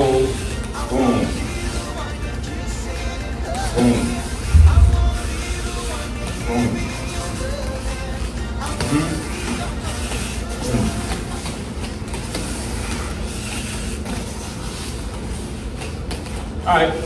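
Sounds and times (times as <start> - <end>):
music playing: 0.0 - 17.0.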